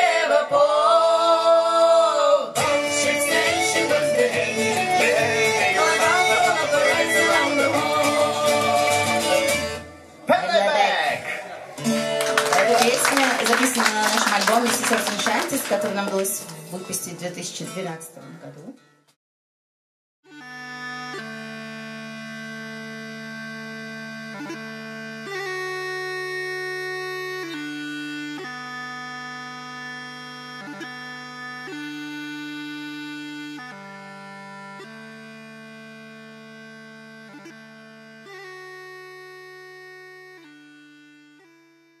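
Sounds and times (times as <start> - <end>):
bagpipe tune: 2.6 - 10.2, 20.3 - 42.0.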